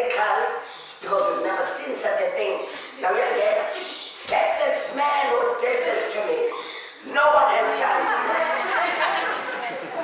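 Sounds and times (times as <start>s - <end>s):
man preaching into microphone: 0.0s - 8.2s.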